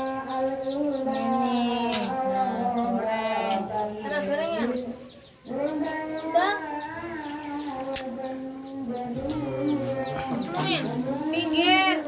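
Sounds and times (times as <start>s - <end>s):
chickens clucking and cheeping: 0.0s - 12.0s.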